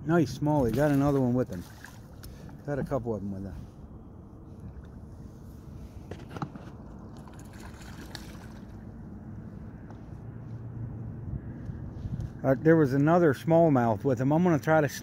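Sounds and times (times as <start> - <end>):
water lapping around boat: 0.1 - 10.7
steady low rumble: 1.7 - 15.0.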